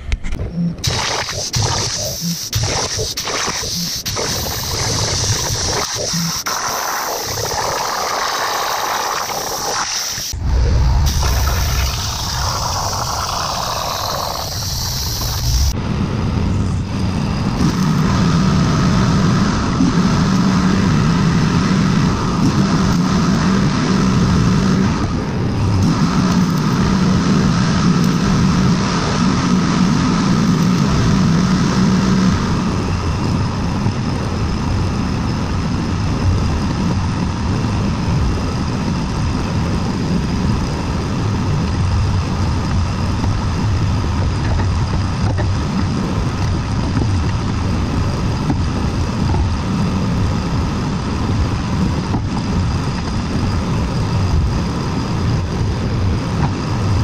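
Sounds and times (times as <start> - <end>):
engine running with low hum: 0.0 - 57.0.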